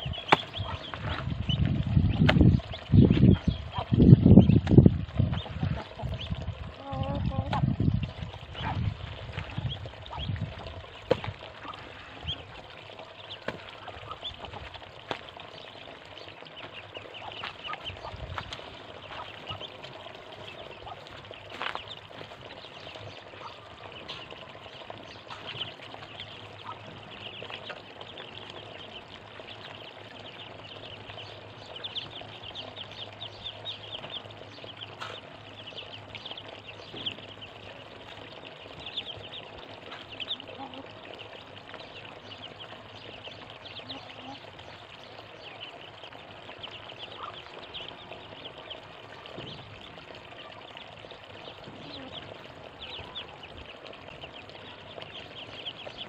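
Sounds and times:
ducklings peeping: 0.0s - 56.0s.

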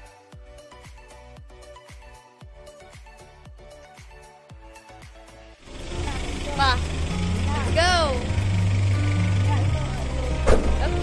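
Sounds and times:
vehicle engine idling: 5.6s - 11.0s.

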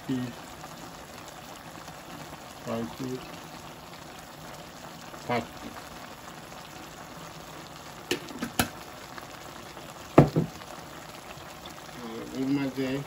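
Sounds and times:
curry bubbling in pot: 0.0s - 13.0s
sharp pops: 8.1s - 8.8s
loud knock: 10.2s - 10.6s.

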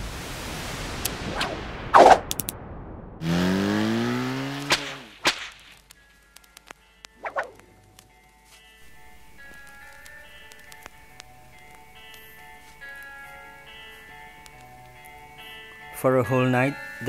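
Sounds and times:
swoosh: 0.5s - 5.3s
faint held musical tones: 5.8s - 17.0s.

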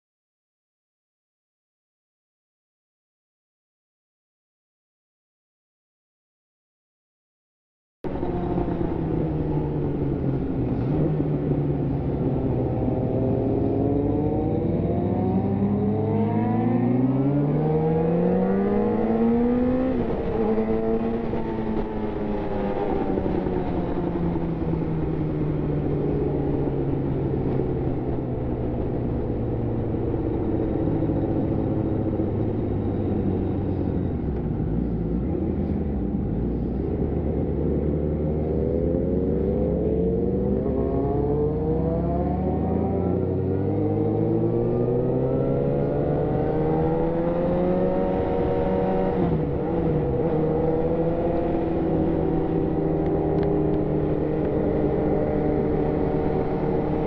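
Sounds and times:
motorcycle engine revving: 8.1s - 57.0s.

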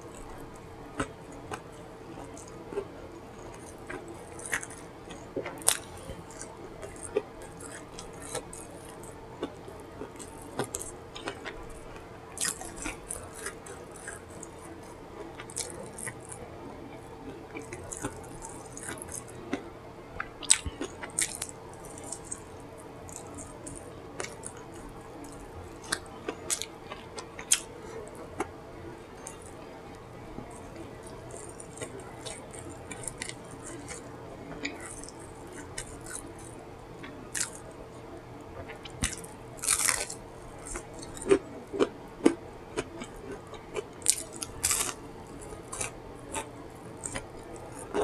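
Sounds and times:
faint steady hum: 0.0s - 48.0s
wet smacking and chewing: 0.1s - 16.4s, 17.2s - 19.6s, 20.2s - 28.5s, 30.4s - 37.7s, 38.6s - 48.0s.

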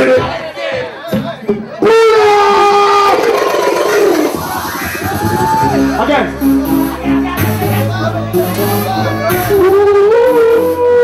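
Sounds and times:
crowd cheering: 0.0s - 10.8s
bass: 1.0s - 11.0s.

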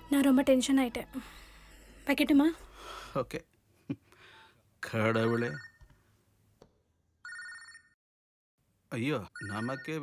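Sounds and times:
phone ringtone electronic ring: 5.1s - 5.8s, 7.2s - 8.0s, 9.3s - 10.0s.

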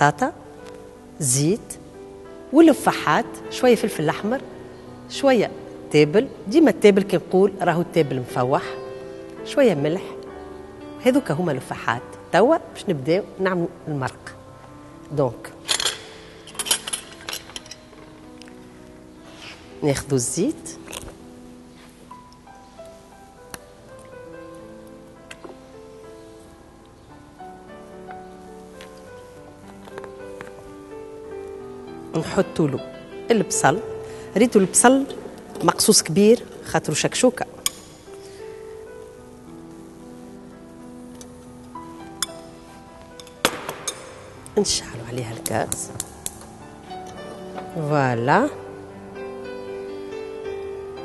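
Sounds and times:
background music: 0.0s - 51.0s.

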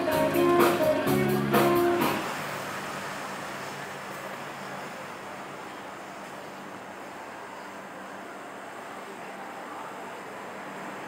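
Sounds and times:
distant traffic hum: 0.0s - 11.0s.

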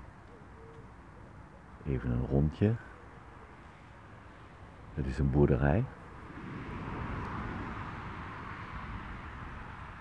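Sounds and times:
vehicle passing by: 5.2s - 10.0s.

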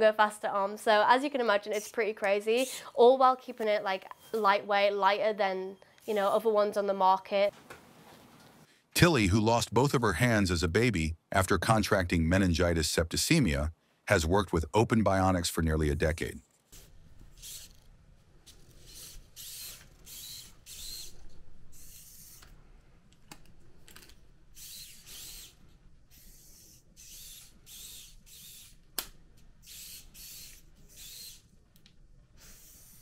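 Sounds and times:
small motors whirring: 16.7s - 17.9s, 18.5s - 22.6s, 24.6s - 28.8s, 29.6s - 31.5s, 32.4s - 33.0s.

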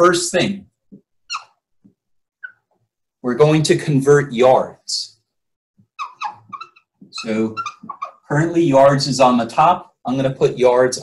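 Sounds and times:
marker squeaking on whiteboard: 0.9s - 2.9s, 5.8s - 8.6s.

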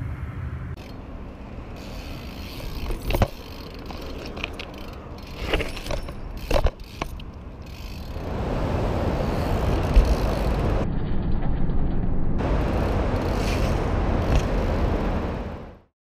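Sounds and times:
bike wheels rushing on concrete: 0.8s - 10.8s, 12.4s - 15.6s.

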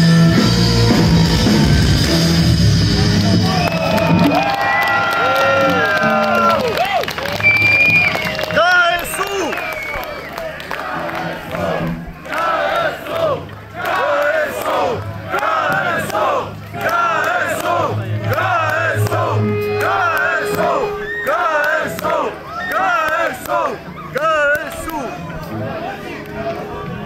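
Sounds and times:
bass guitar notes: 0.0s - 6.8s, 14.9s - 22.6s
crowd chanting and shouting: 10.2s - 27.0s
held note: 18.0s - 22.0s.

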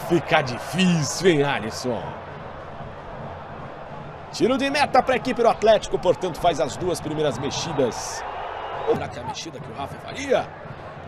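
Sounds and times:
stadium crowd hubbub: 0.0s - 11.0s.

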